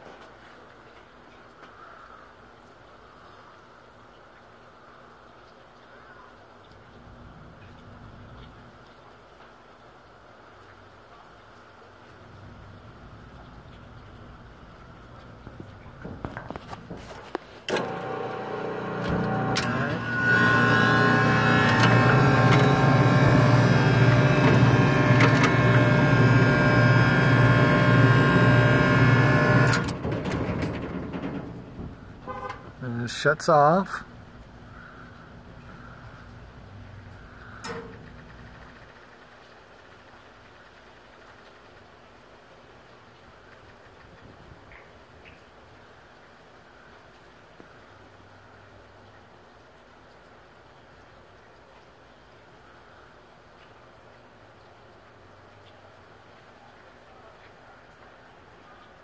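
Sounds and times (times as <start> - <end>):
ice machine humming: 16.2 - 34.0.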